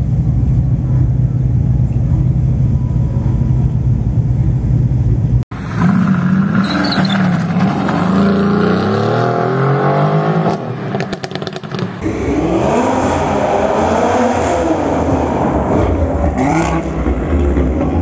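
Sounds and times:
car revving in a tunnel: 2.2 - 18.0
sports car accelerating: 5.6 - 18.0.

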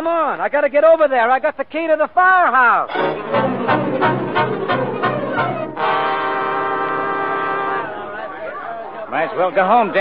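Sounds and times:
orchestra music bridge: 2.9 - 8.3.

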